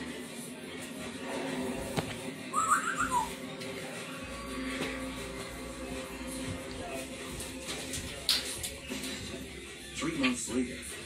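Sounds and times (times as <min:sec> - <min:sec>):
whistled phrase: 0:02.5 - 0:03.4.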